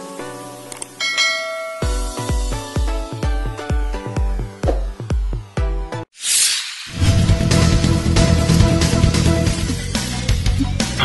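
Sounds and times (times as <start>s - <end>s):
bright bell-like chime: 1.0s - 2.3s.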